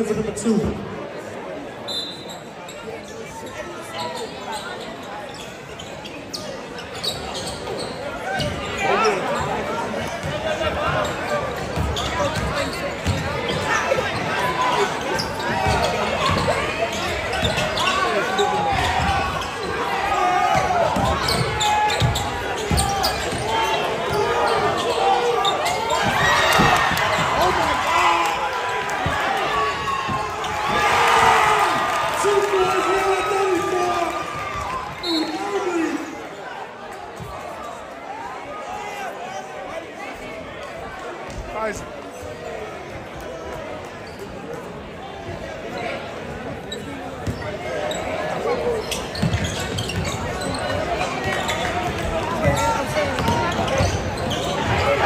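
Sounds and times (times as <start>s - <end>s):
crowd chatter and shouts: 0.0s - 55.0s.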